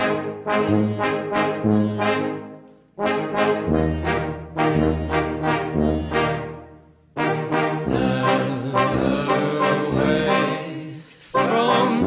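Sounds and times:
brass band playing chords: 0:00.0 - 0:12.0.

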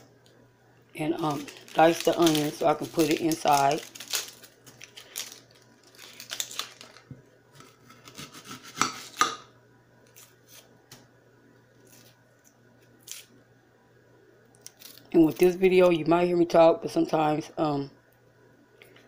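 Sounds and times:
onion skin peeling and tearing: 0:01.2 - 0:09.2, 0:11.8 - 0:13.4, 0:14.6 - 0:15.6.

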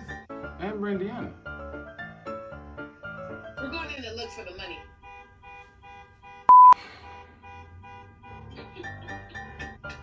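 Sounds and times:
faint repeating electronic tones: 0:05.8 - 0:08.8
censor bleep: 0:06.5 - 0:06.8.

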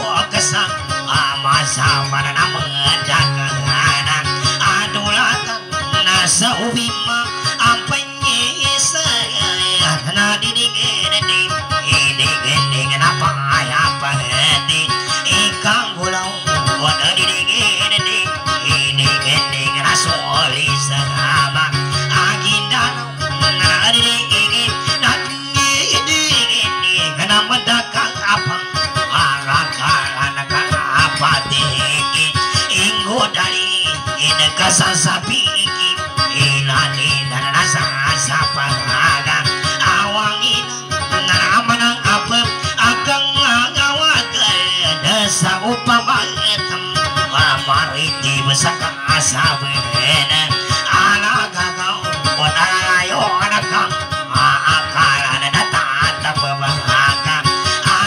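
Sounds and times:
acoustic guitar plucked runs: 0:00.0 - 0:58.0.

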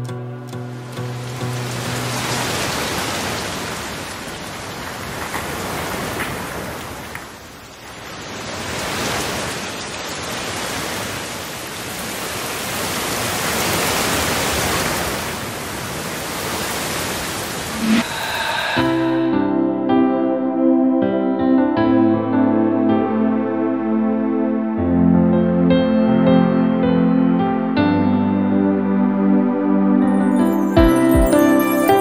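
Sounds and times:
guitar music: 0:00.0 - 0:02.5
rain-like rushing noise: 0:00.7 - 0:19.2.

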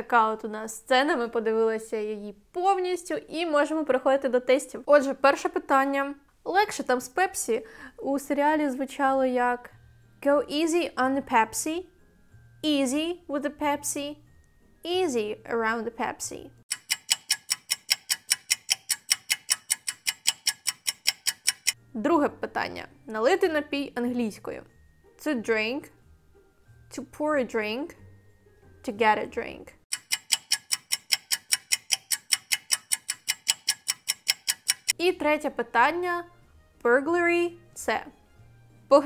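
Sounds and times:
fast clock-like ticking: 0:16.7 - 0:21.8, 0:29.9 - 0:35.0.

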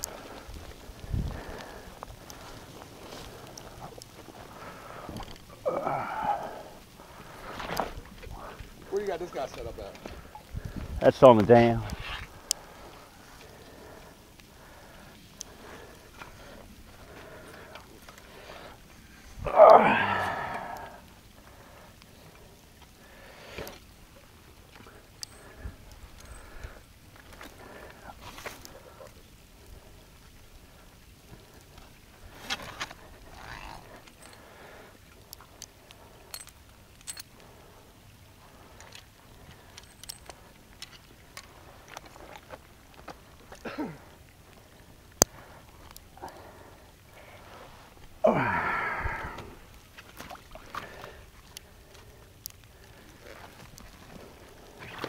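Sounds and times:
rustles: 0:00.0 - 0:55.0
loud cry: 0:19.5 - 0:20.7
small metal clicks: 0:35.2 - 0:37.4, 0:38.8 - 0:43.0.

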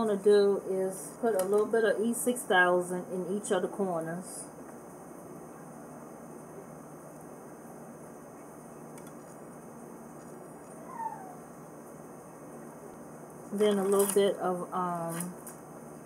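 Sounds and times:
low room hiss: 0:00.0 - 0:16.0.

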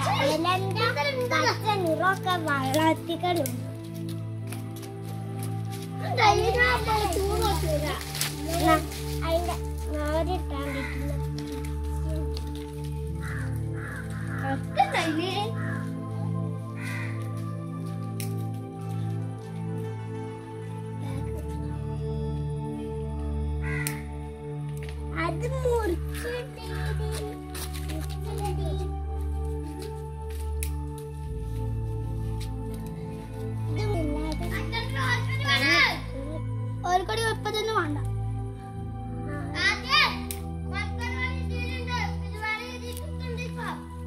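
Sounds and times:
background music with chords: 0:00.0 - 0:44.0
crow cawing: 0:10.6 - 0:11.6, 0:13.0 - 0:17.5, 0:23.6 - 0:24.1.

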